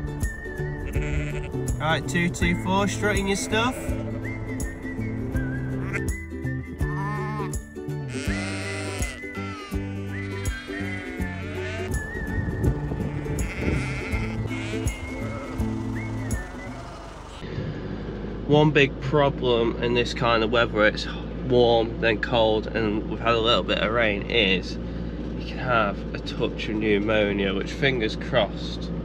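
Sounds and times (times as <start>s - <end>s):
background music: 0.0s - 17.4s
sheep bleating: 0.8s - 1.7s, 3.0s - 4.3s, 5.6s - 6.2s, 6.8s - 12.1s, 12.8s - 17.4s.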